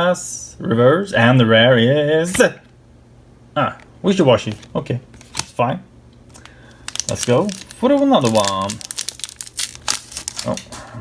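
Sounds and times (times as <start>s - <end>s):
foil wrapper crinkling and tearing: 6.3s - 10.8s.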